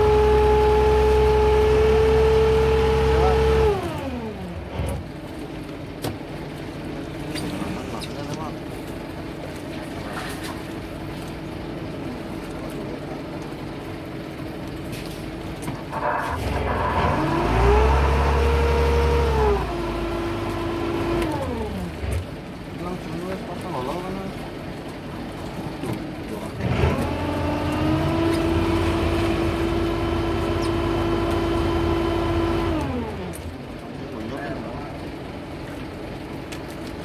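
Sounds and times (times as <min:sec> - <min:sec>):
net hauler whining: 0:15.8 - 0:22.7, 0:26.6 - 0:33.6.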